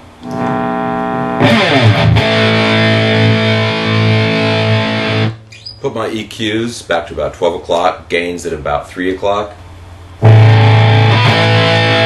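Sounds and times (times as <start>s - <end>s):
distorted electric guitar chords: 0.0s - 5.7s, 10.2s - 12.0s.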